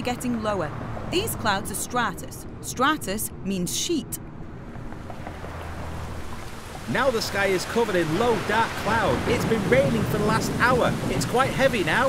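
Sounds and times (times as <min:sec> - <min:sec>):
rain falling: 0:04.7 - 0:12.0.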